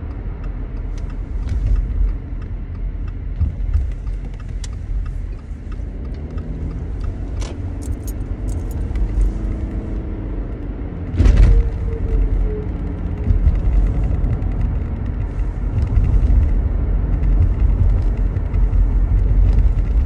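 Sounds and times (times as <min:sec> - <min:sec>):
car road and engine rumble: 0:00.0 - 0:20.0
small clicks and rattles: 0:00.8 - 0:10.0, 0:11.2 - 0:20.0.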